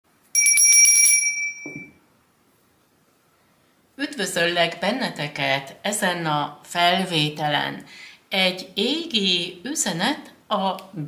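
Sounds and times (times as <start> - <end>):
bell ringing rapidly: 0.4 - 1.9.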